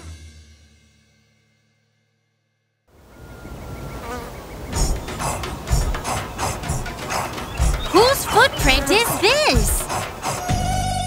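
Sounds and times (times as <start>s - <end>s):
cartoon fly buzzing: 4.0s - 11.0s
rhythmic beat: 4.7s - 11.0s.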